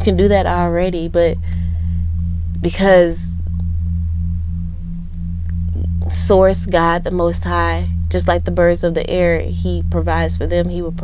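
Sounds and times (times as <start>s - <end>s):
low drone of held tones: 0.0s - 11.0s.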